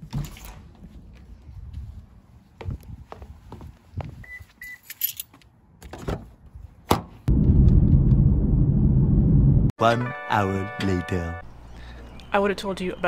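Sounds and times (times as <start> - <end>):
short electronic beeps: 4.2 - 4.9.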